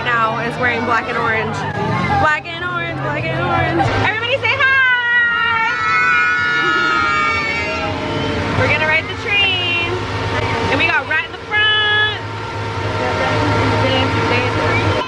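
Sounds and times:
ride train engine humming: 0.0 - 15.0.

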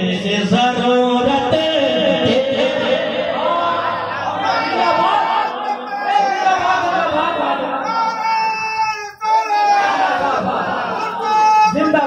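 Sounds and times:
man chanting over loudspeakers: 0.0 - 12.0
crowd chatter: 1.5 - 12.0.

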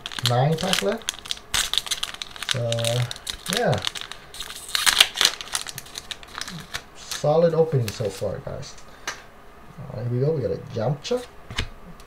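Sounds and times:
foil wrapper crinkling: 0.0 - 8.4.

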